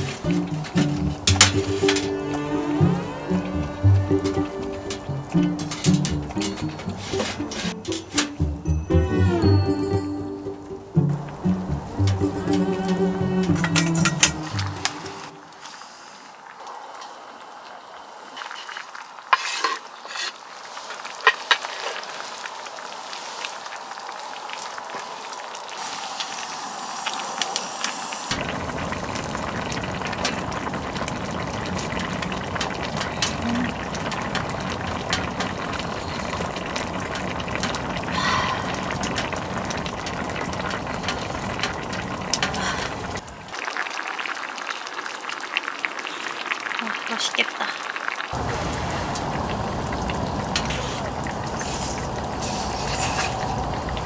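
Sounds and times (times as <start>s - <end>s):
stew bubbling in pan: 0.0s - 9.6s, 11.0s - 54.0s
spatula stirring and scraping pot: 18.5s - 20.4s.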